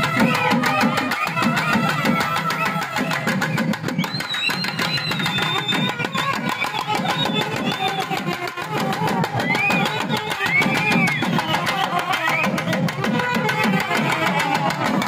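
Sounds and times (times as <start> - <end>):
drum beat: 0.0 - 15.0
reed wind instrument melody: 0.0 - 15.0.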